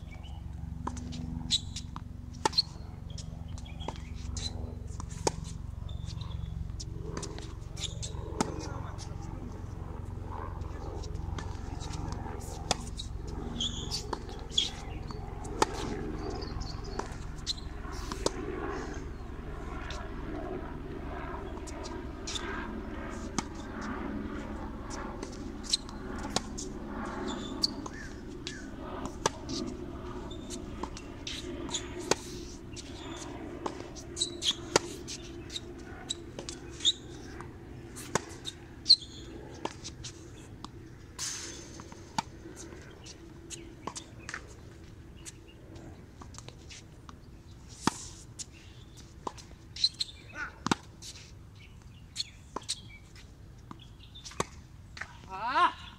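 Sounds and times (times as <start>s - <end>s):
tennis ball bouncing: 0.8s - 18.4s, 23.1s - 23.7s, 25.2s - 26.6s, 27.6s - 29.6s, 30.2s - 39.0s, 41.6s - 45.4s, 47.8s - 51.1s.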